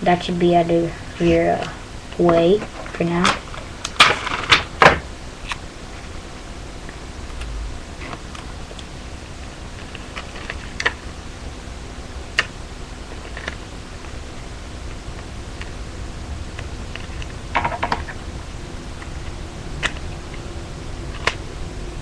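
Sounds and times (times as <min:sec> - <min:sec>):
microphone hum and hiss: 0:00.0 - 0:22.0
tape crackling: 0:01.2 - 0:11.3, 0:12.1 - 0:15.8, 0:16.5 - 0:22.0.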